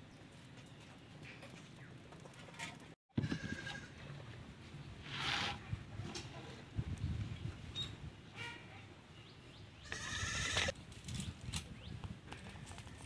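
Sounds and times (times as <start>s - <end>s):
farm animal calling: 9.8s - 10.7s.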